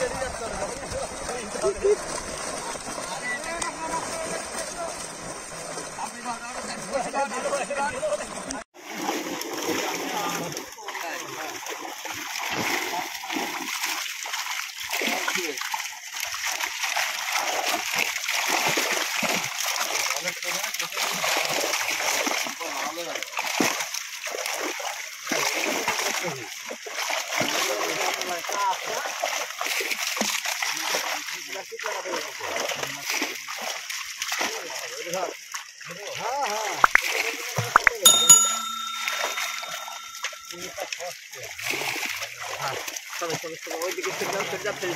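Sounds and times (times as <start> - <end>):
fish thrashing and splashing water: 0.0 - 7.0, 8.8 - 38.1, 41.7 - 44.9.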